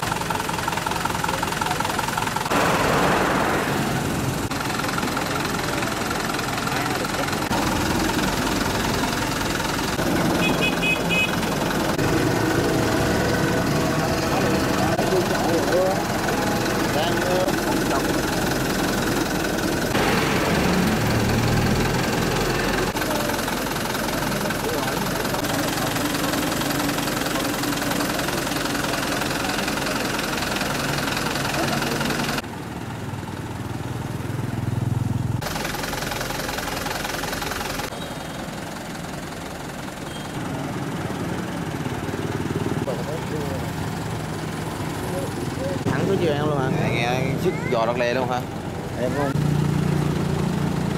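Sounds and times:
vehicle engine running: 0:00.0 - 0:50.9
people talking: 0:01.1 - 0:10.7, 0:13.8 - 0:19.2, 0:22.0 - 0:32.4, 0:42.8 - 0:43.7, 0:45.0 - 0:49.4.

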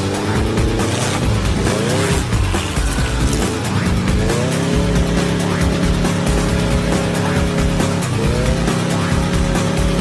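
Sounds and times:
background music: 0:00.0 - 0:10.0
engine revving: 0:00.0 - 0:10.0.

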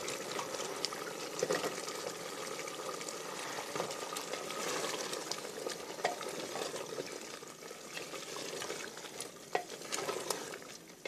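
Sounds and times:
curry sizzling in a pot: 0:00.0 - 0:11.0
wooden spoon scraping and knocking pot: 0:03.4 - 0:07.1, 0:08.0 - 0:10.8.

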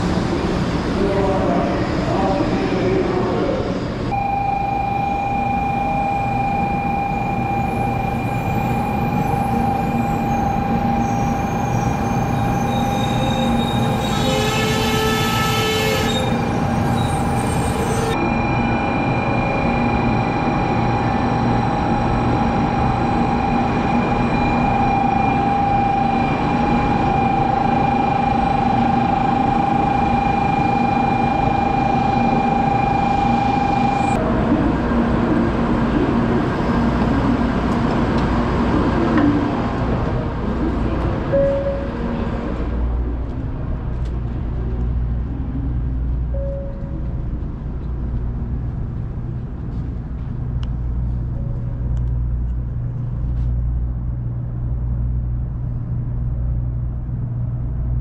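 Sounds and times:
train rumble with high whine: 0:00.0 - 0:58.0
train horn call: 0:13.0 - 0:16.5.

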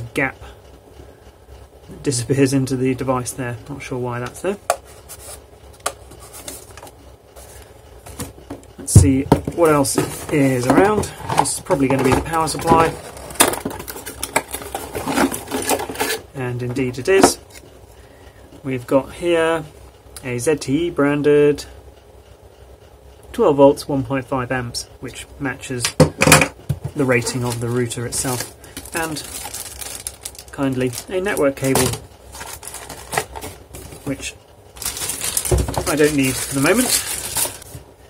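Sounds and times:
cardboard and plastic rustling: 0:04.3 - 0:17.7, 0:26.7 - 0:37.9.

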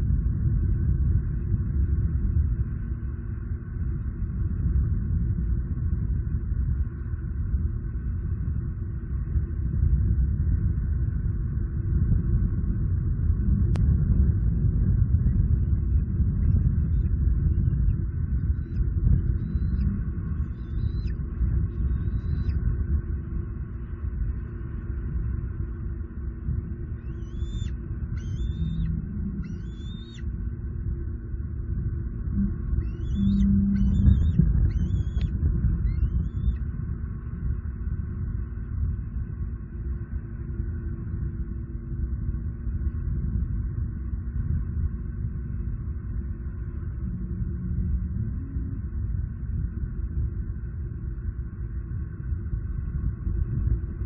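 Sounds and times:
wind buffeting microphone: 0:00.0 - 0:54.0
high rising bird chirps: 0:19.4 - 0:21.2, 0:21.8 - 0:22.6, 0:27.1 - 0:30.3, 0:32.8 - 0:36.6.

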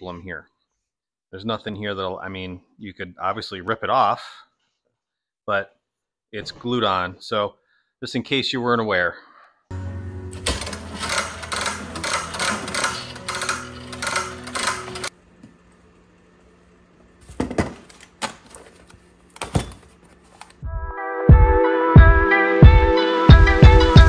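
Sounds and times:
music: 0:09.7 - 0:15.1, 0:20.6 - 0:24.0.

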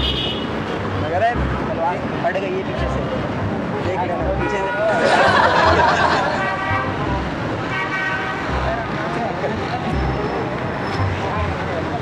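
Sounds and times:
vehicle horns: 0:00.0 - 0:00.7, 0:04.2 - 0:05.0, 0:06.0 - 0:08.9
road traffic: 0:00.0 - 0:12.0
people's voices: 0:00.8 - 0:07.6, 0:08.4 - 0:12.0.

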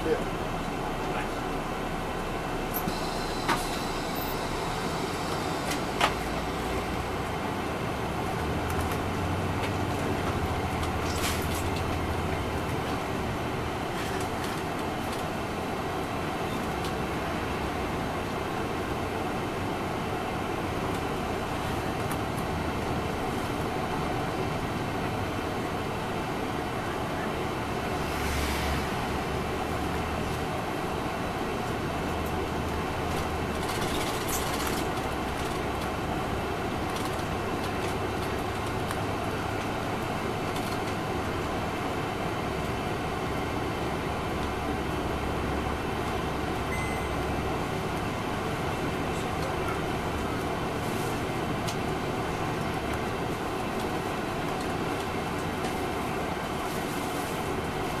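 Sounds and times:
bus diesel engine running: 0:00.0 - 0:58.0
road and tyre noise: 0:00.0 - 0:58.0
brief air hisses: 0:02.8 - 0:06.1.

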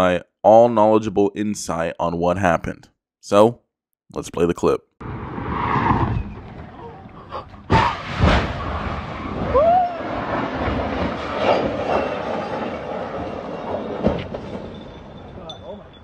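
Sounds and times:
car rushing past: 0:05.0 - 0:14.7
loud car crash: 0:05.0 - 0:16.0
bang of car hitting car: 0:07.7 - 0:09.5
rising-and-falling cry: 0:09.3 - 0:10.3.

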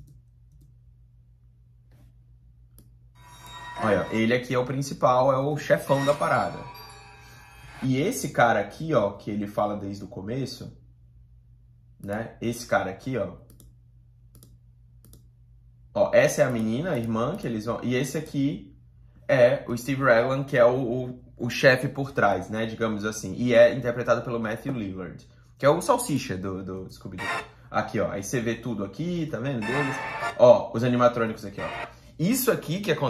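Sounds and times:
computer controls clicking: 0:00.0 - 0:00.8, 0:13.4 - 0:15.3, 0:16.4 - 0:17.5
low steady hum: 0:00.0 - 0:33.0.

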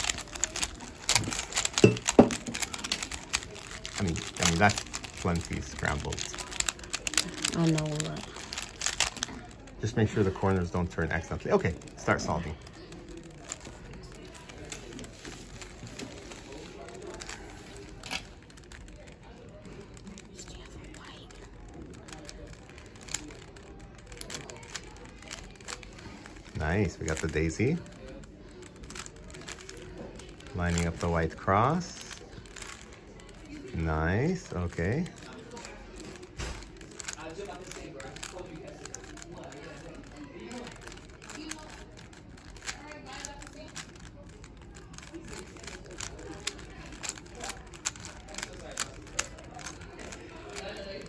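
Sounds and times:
puzzle cube plastic clicks: 0:00.0 - 0:51.0.

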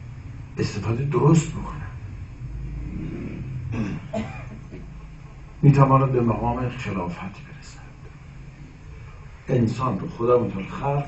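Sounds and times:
low background rumble: 0:00.0 - 0:11.0
man talking: 0:00.6 - 0:02.0, 0:05.6 - 0:08.0, 0:09.5 - 0:11.0.

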